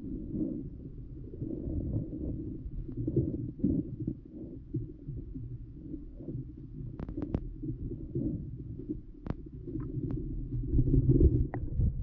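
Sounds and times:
muffled underwater river rumble: 0.0s - 12.0s.

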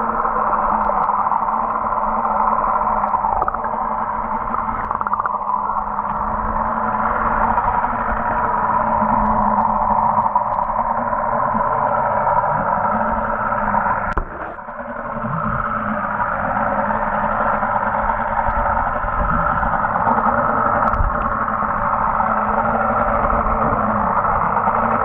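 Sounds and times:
low hum: 0.0s - 25.0s
muffled underwater water rush: 0.0s - 25.0s.

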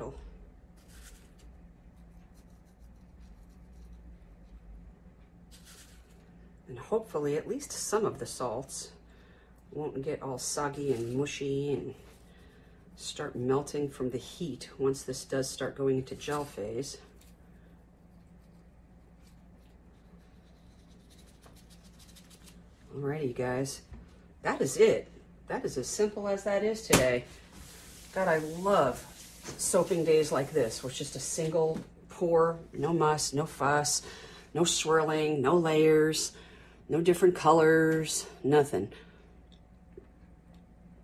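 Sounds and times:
low hum: 0.0s - 35.6s.

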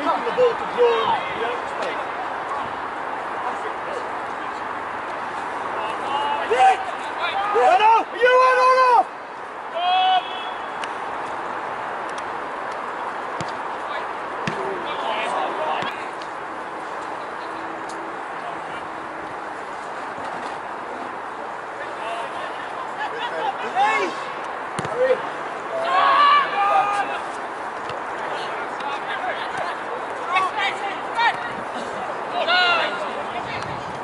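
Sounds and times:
players shouting: 0.0s - 4.6s, 5.3s - 11.6s, 12.4s - 17.6s, 20.8s - 33.7s
open-air hiss: 0.0s - 33.9s.

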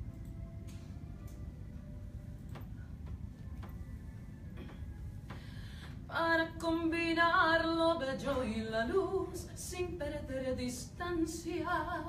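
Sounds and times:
soft beat ticks: 2.4s - 4.0s.

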